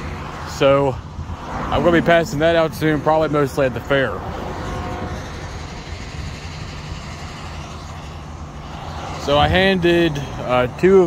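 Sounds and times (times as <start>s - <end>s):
road traffic rumble and hiss: 0.0s - 11.0s.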